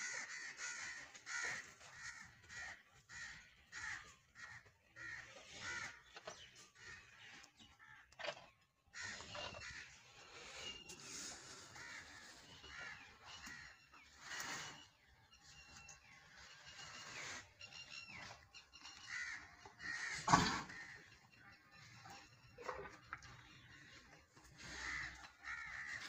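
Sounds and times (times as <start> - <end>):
birds cawing: 0.0 - 8.2, 8.9 - 14.8, 18.5 - 26.0.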